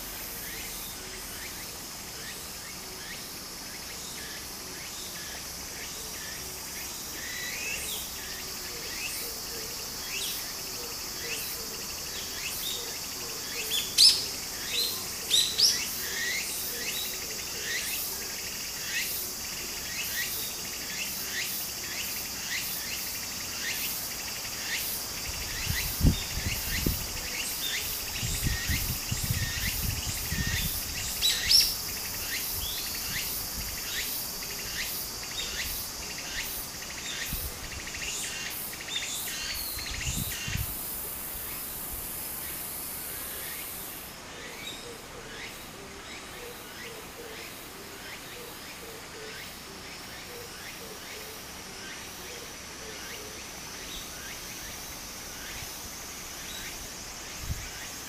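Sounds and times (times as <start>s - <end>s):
cicadas droning: 0.0s - 58.0s.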